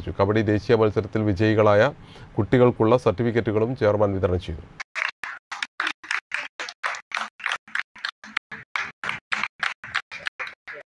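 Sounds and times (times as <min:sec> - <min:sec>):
people clapping: 0:04.8 - 0:10.9.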